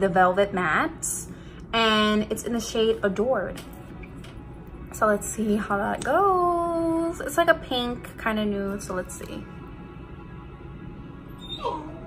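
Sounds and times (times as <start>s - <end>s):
quiet pop music: 0.0s - 12.0s.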